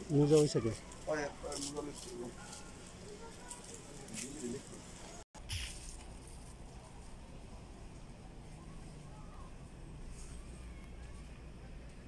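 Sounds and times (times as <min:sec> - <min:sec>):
faint indistinct voices: 0:00.0 - 0:05.2, 0:06.2 - 0:12.0.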